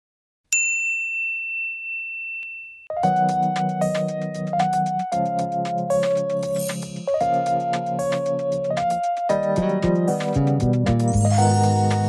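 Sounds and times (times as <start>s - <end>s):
high-pitched bell ding: 0.5s - 2.9s.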